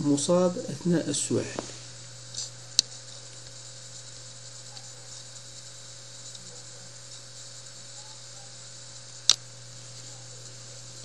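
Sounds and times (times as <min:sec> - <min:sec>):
low electrical hum and hiss: 0:00.0 - 0:11.0.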